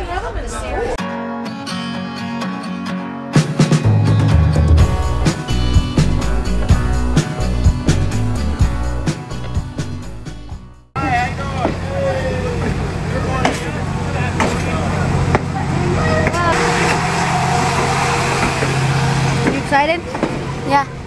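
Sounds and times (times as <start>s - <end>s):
people's voices: 11.0s - 17.1s
train cars rolling past: 11.0s - 21.0s.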